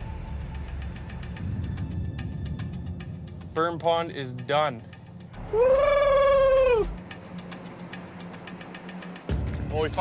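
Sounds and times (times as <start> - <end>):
man whooping: 5.5 - 7.0.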